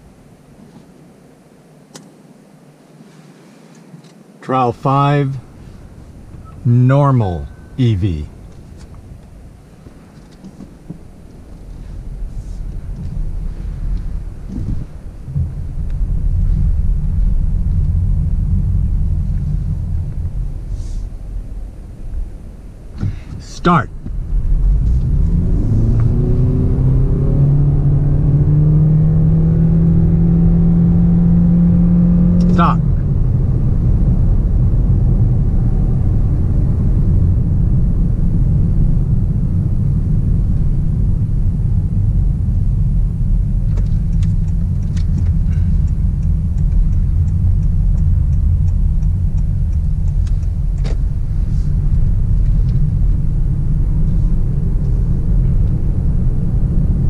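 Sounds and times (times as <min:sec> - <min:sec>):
tyre and road rumble: 0:03.8 - 0:57.0
faint ticking: 0:44.0 - 0:50.9.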